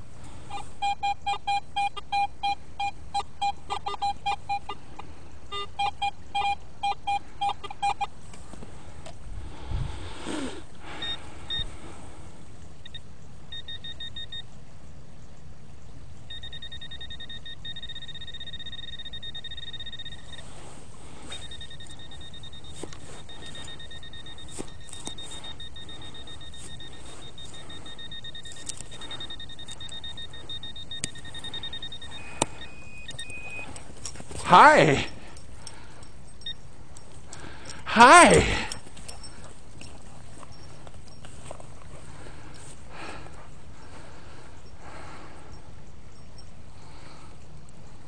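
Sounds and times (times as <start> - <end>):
metal detector rapid beeping: 0.5 - 4.8, 5.5 - 8.1, 11.0 - 11.7, 12.8 - 14.5, 16.3 - 20.6, 21.2 - 41.3.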